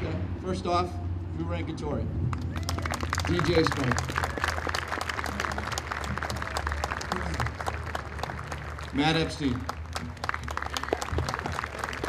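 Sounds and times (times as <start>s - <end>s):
crowd applauding: 2.3s - 12.0s.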